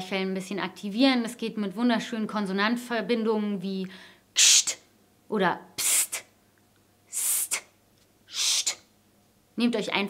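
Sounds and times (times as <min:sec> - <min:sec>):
woman hissing pst: 0:04.4 - 0:04.9, 0:05.8 - 0:06.3, 0:07.1 - 0:07.7, 0:08.3 - 0:08.9.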